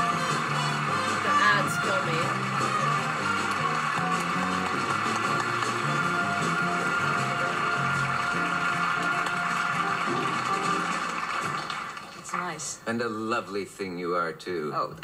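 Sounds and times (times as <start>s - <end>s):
house band playing: 0.0s - 11.7s
studio audience applause: 0.0s - 12.9s.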